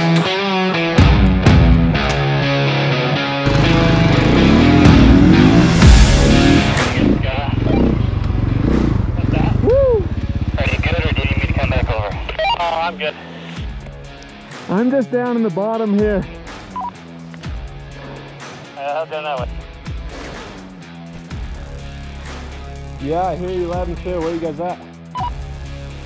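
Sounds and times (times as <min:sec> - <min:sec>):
electric guitar rock music: 0:00.0 - 0:08.6
snow bike engine revving: 0:03.4 - 0:12.0.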